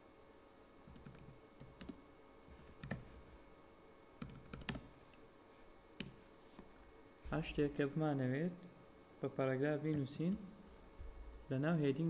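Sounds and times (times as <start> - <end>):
computer keyboard typing: 0.8 - 3.1, 4.2 - 4.9.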